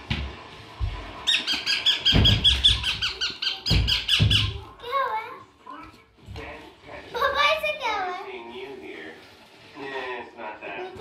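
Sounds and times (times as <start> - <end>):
parakeet high calls: 1.2 - 4.6.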